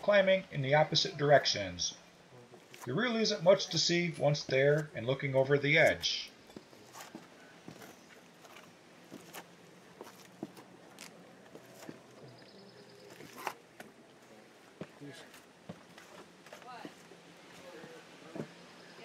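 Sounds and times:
faint footsteps: 0:06.4 - 0:12.4, 0:13.0 - 0:18.6.

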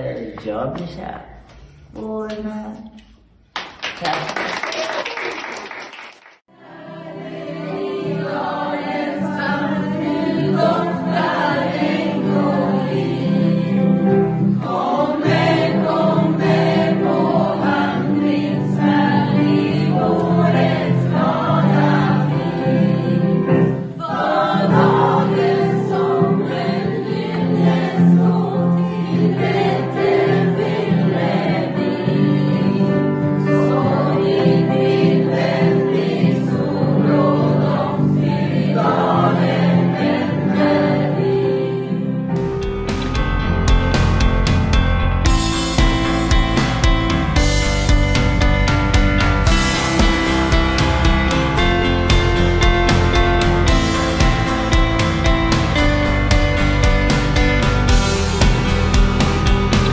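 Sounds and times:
choir singing: 0:06.5 - 0:42.4, 0:45.4 - 0:59.9
digital piano: 0:06.7 - 0:59.9.

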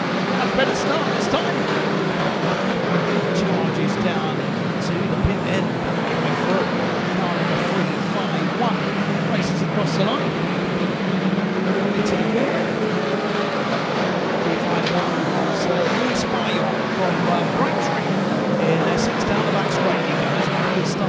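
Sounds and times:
racing car engines droning: 0:00.0 - 0:21.0.

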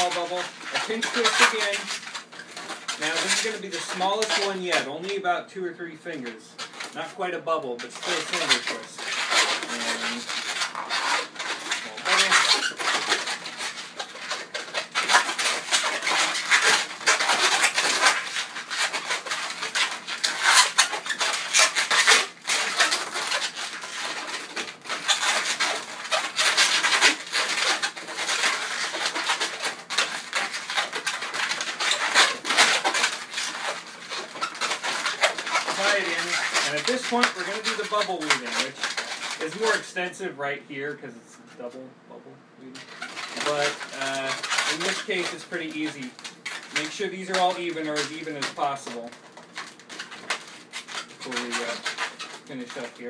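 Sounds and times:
balloons squeaking and rubbing: 0:00.0 - 0:41.9, 0:42.6 - 0:53.0.

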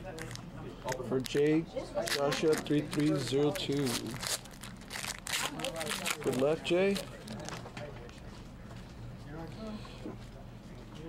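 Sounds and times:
foil wrapper crinkling: 0:00.0 - 0:07.8.

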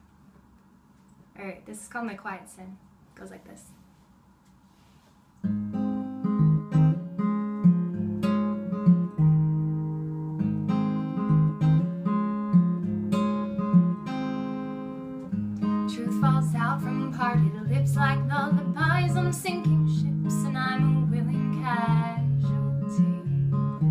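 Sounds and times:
acoustic guitar folk song: 0:05.4 - 0:23.9
woman singing: 0:15.8 - 0:23.4.

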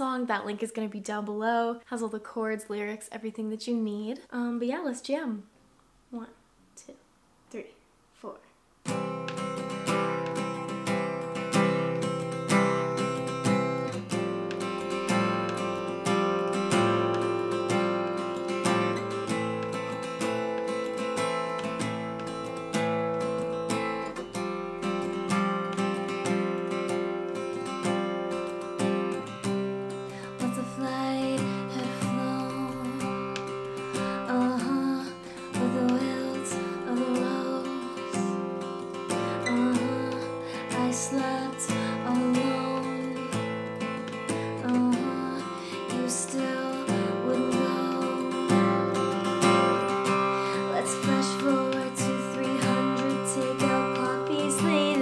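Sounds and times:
acoustic guitar strumming: 0:08.8 - 0:55.0
woman singing: 0:30.1 - 0:55.0.

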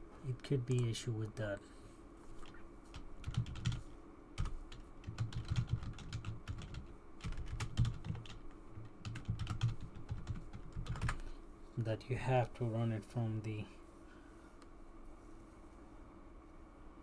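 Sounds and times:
computer keyboard typing: 0:02.4 - 0:11.3.

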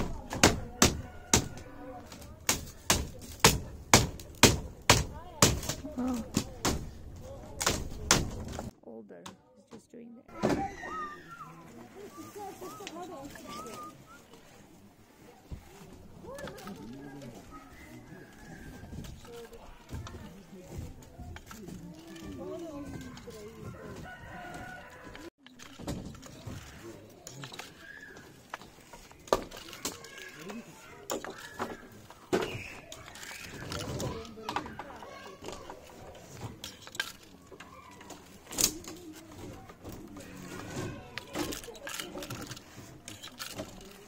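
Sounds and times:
hand tool striking bamboo strips: 0:00.0 - 0:08.7
background voices and calls: 0:00.0 - 0:44.0.

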